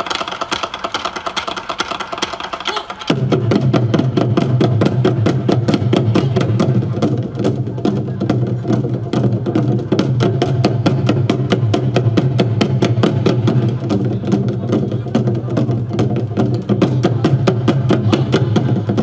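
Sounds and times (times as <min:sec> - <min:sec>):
barrel drums played with sticks: 0:00.0 - 0:19.0.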